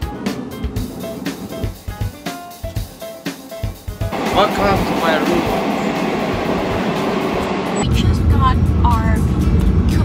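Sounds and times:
train rumbling from inside carriage: 0.0 - 2.1, 3.8 - 10.0.

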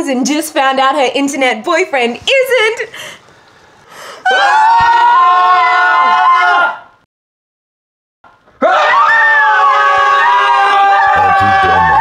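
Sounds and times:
people screaming together: 4.2 - 7.0, 8.6 - 12.0.

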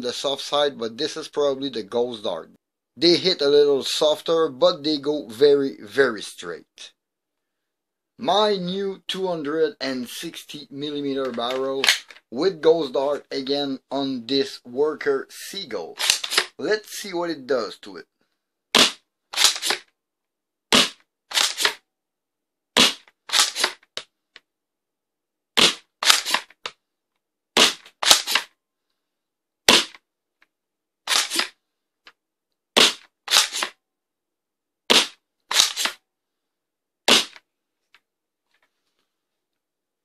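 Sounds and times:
foam dart blaster clacks: 37.1 - 37.4.

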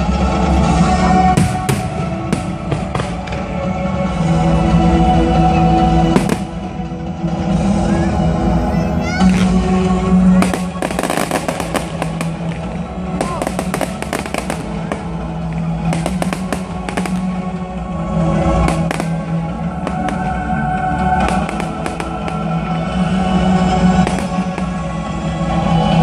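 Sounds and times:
steady music: 0.0 - 26.0
crackling firework reports: 10.4 - 17.6, 18.5 - 25.0.

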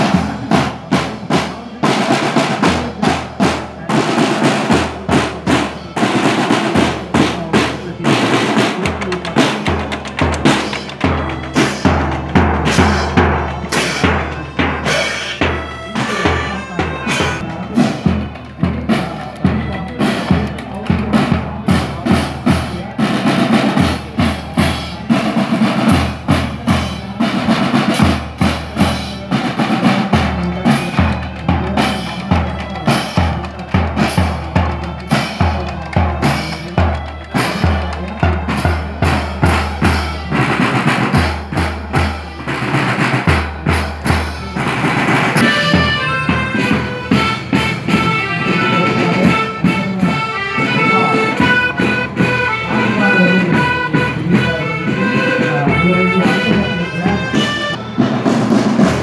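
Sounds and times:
bass and snare drums beating: 0.0 - 59.0
marching band playing: 0.0 - 59.0.

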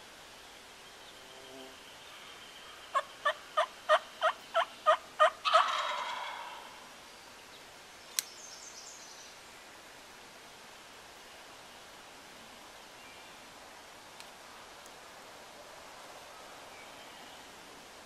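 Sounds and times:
turkey gobbling: 2.9 - 6.8
turkey yelps: 2.9 - 6.8
sharp click: 8.1 - 8.4.

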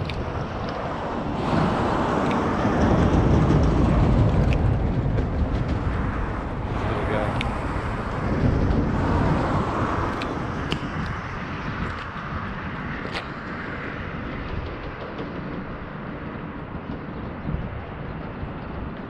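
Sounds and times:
low rumbling on microphone: 0.0 - 19.0.

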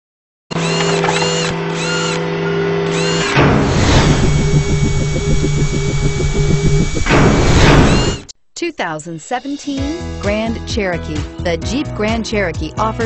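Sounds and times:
fast even electronic pulsing: 2.9 - 8.3
held electronic tones: 4.0 - 8.3.

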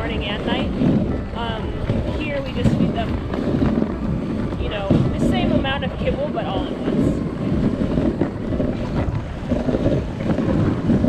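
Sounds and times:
sled runners over snow: 0.0 - 11.0
wind buffeting microphone: 0.0 - 11.0.

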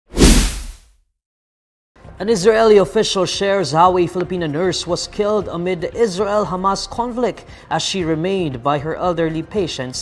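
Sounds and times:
swoosh: 0.1 - 0.8.

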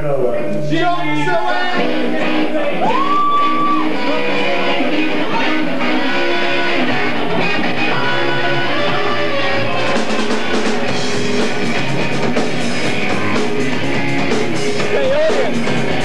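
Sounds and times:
bass guitar: 0.0 - 16.0
electric guitar riff: 0.4 - 16.0
drums and cymbals: 6.8 - 16.0.

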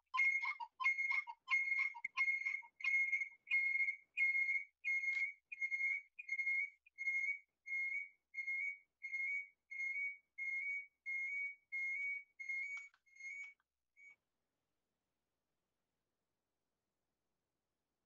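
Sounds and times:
high whistle-like tone repeating: 0.0 - 13.5.

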